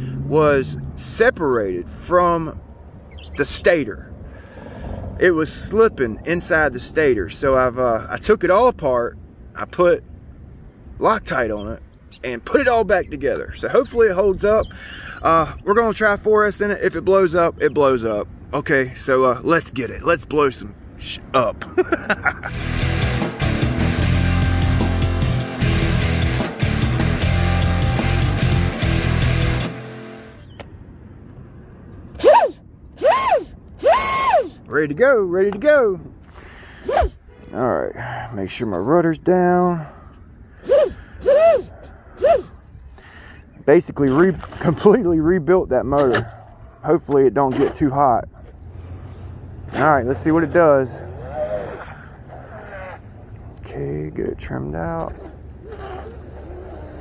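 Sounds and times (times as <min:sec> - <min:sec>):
intro music: 0:22.5 - 0:30.4
electric motor whine: 0:32.2 - 0:34.6.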